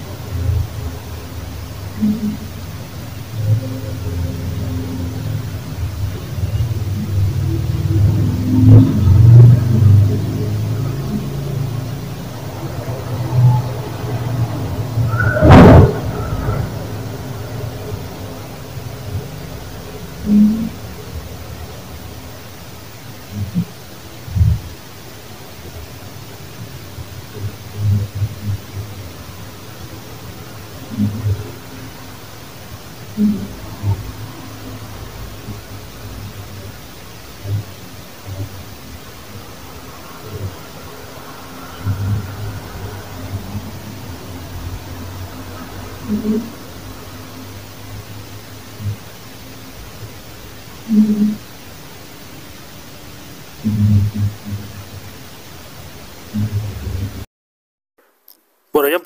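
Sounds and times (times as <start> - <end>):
low rumbling background noise: 0.0 - 57.3.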